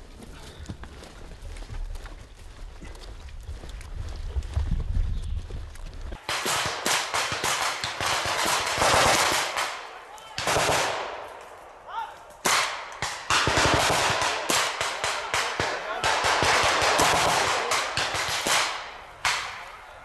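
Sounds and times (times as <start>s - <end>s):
automatic gunfire bursts: 6.2s - 9.8s, 10.4s - 11.2s, 12.5s - 19.5s.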